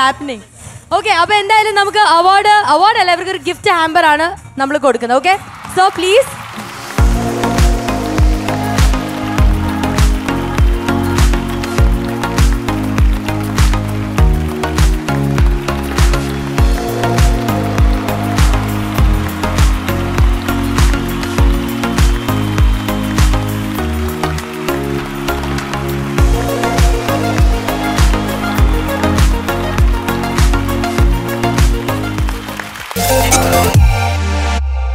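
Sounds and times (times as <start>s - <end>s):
upbeat background music: 1.3s - 34.9s.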